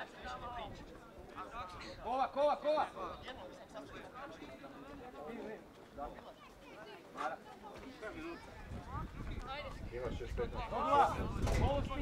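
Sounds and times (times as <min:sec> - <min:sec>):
wind rumble on microphone: 0:08.5 - 0:12.0.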